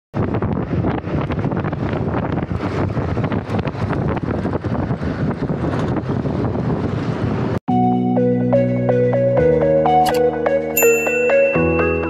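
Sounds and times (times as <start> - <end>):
wind buffeting microphone: 0.2 - 7.6.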